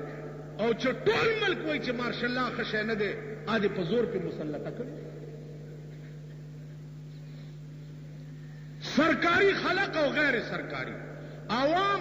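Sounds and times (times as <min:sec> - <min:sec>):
faint background hiss: 0:00.0 - 0:12.0
low electrical hum: 0:00.0 - 0:12.0.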